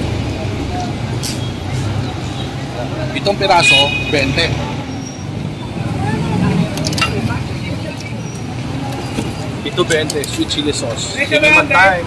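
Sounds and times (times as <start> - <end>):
crowd voices: 0.0 - 12.0
vehicle traffic rumble: 0.0 - 12.0.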